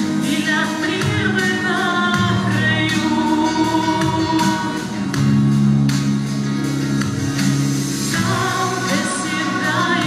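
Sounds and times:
woman singing: 0.0 - 5.1, 8.1 - 10.0
instrumental accompaniment: 0.0 - 10.0.

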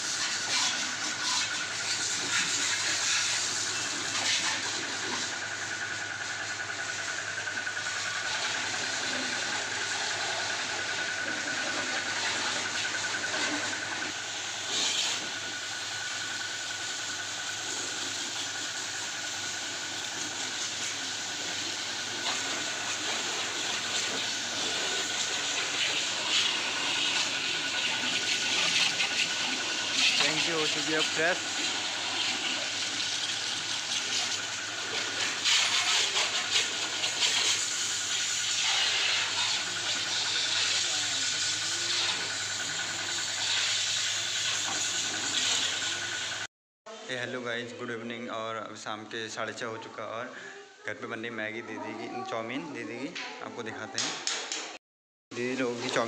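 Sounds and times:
pressure washer spray hissing: 0.0 - 46.5.

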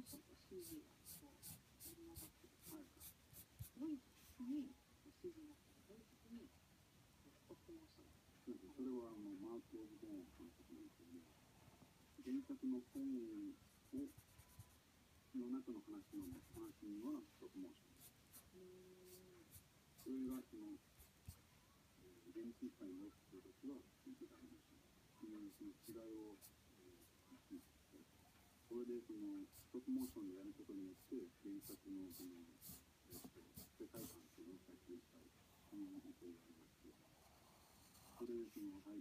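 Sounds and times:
pencil scratching on paper: 0.0 - 3.8, 13.8 - 14.8, 16.1 - 16.8, 31.6 - 34.2, 37.1 - 38.8
quiet voice talking: 0.0 - 6.6, 7.2 - 11.4, 12.1 - 39.0.

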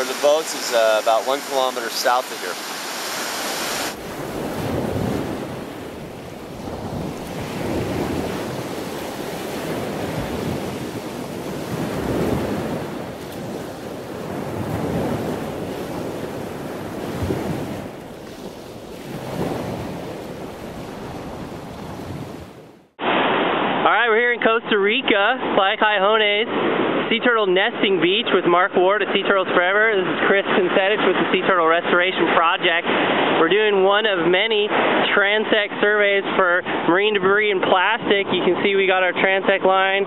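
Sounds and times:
ocean surf on beach: 0.0 - 24.2, 25.0 - 27.3, 28.3 - 40.0
wind rumbling on microphone: 2.4 - 23.9.

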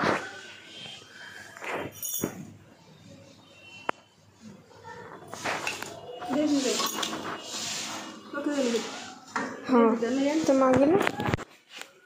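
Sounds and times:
metal plates and bowls clinking: 5.6 - 10.6.

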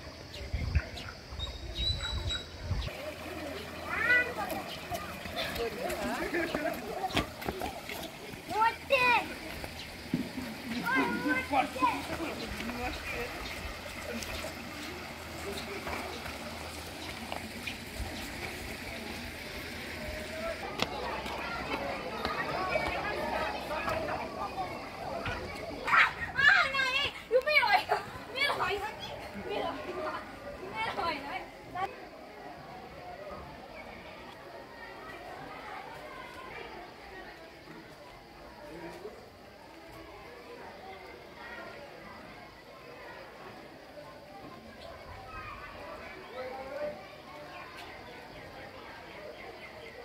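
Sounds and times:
children calling and shouting: 0.0 - 50.0
birds chirping: 0.1 - 26.9.

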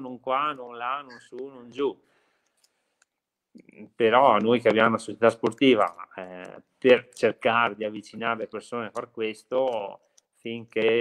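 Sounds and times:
man talking: 0.0 - 2.0, 3.6 - 11.0.

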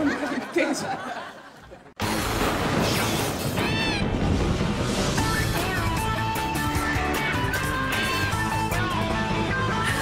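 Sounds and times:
theme music: 2.0 - 10.0.

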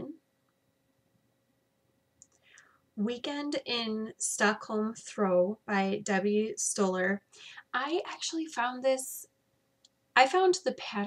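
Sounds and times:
soft intake of breath: 2.4 - 2.9, 7.3 - 7.6.

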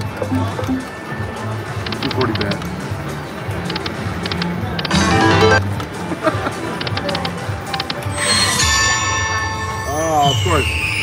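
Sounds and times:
slot machine jingles and chimes: 0.2 - 1.0, 4.9 - 5.7, 8.1 - 11.0.

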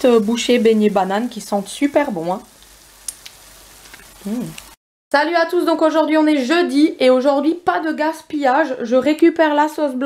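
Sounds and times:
food sizzling in hot oil: 0.0 - 4.8.

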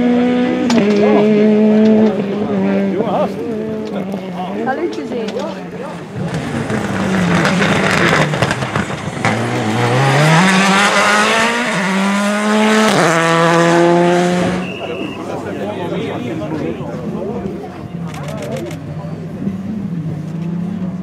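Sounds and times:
rally car engine at full throttle: 0.0 - 21.0.

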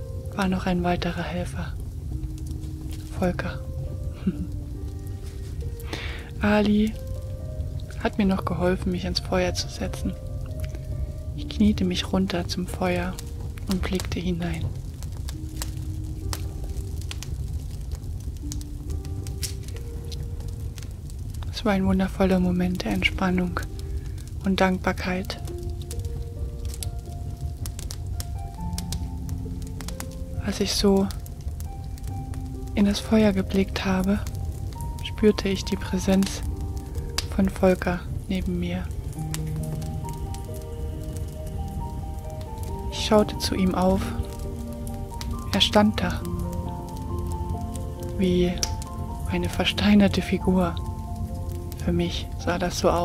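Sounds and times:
slow relaxation music: 0.0 - 53.0
wood fire crackling and popping: 0.0 - 53.0.

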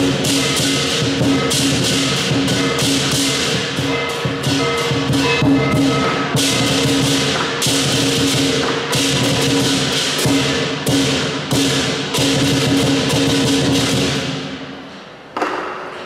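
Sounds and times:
ringing gong: 0.0 - 14.6
lion dance drum: 0.0 - 14.8
hand cymbals crashing: 0.0 - 15.0.

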